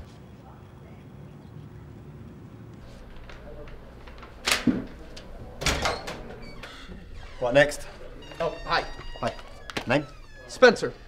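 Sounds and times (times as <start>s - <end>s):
paper rustling: 2.8s - 5.4s.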